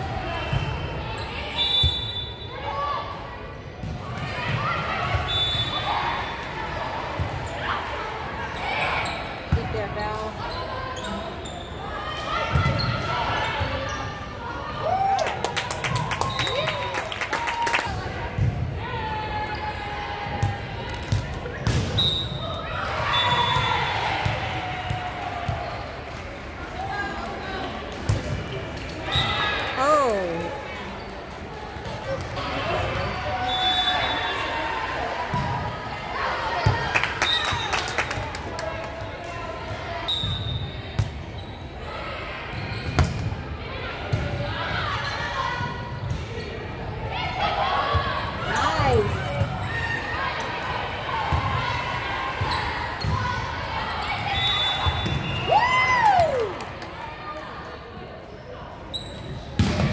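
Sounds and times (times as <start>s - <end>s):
voices of players and spectators: 0.0s - 59.9s
volleyball smacks echoing in gym: 20.3s - 22.2s, 42.8s - 43.4s, 59.5s - 59.9s.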